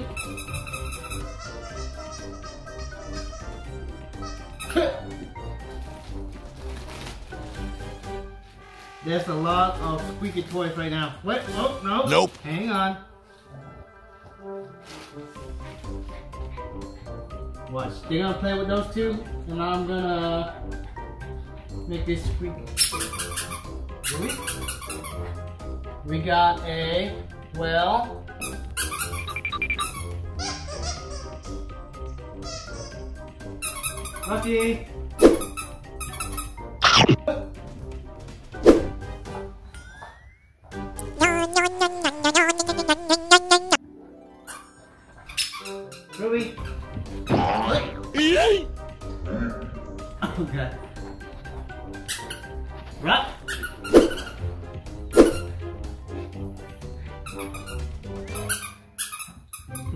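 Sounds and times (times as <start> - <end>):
squeaky toy squeaking: 0.0 - 4.8, 22.8 - 25.2, 28.4 - 31.4, 32.4 - 33.0, 33.6 - 34.5, 41.0 - 43.8, 45.3 - 46.7, 52.1 - 52.5, 57.2 - 59.9
background music: 0.0 - 39.8, 40.6 - 59.0.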